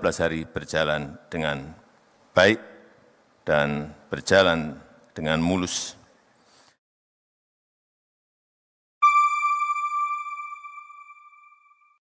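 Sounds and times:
bright electronic chime: 9.0s - 12.0s.

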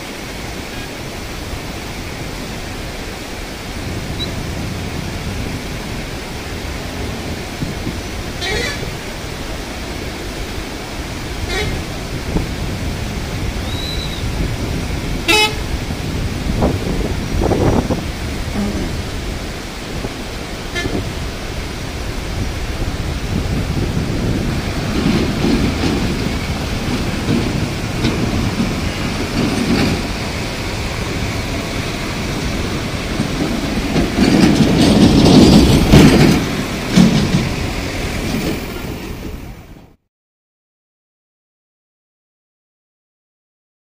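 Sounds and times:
floodwater rushing: 0.0s - 39.8s
heavy vehicle engine: 6.5s - 39.6s
vehicle horn tooting: 8.4s - 8.9s, 11.4s - 11.8s, 15.3s - 15.6s, 20.7s - 21.0s
background voices: 18.4s - 19.3s.

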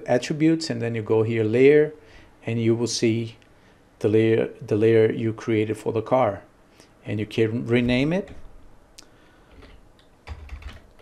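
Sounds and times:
computer keyboard typing: 9.5s - 11.0s.

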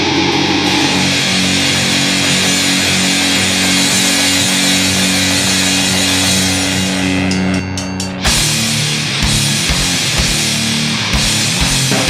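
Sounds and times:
distorted guitar and bass: 0.0s - 12.0s
drums and cymbals: 0.0s - 12.0s.

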